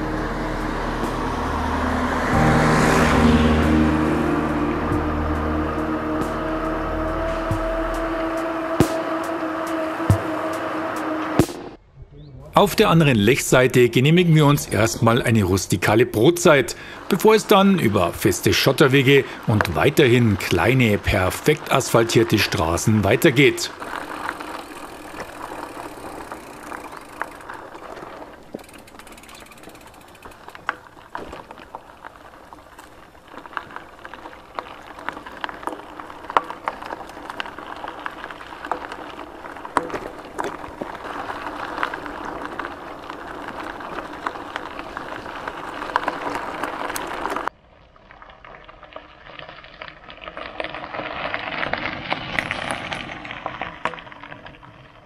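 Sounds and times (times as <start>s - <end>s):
bicycle tyres crunching on gravel: 0.0s - 11.6s, 12.6s - 55.0s
bike passing on gravel: 0.0s - 11.8s, 12.6s - 55.0s
bike rattles and clicks: 5.9s - 11.6s, 13.2s - 55.0s.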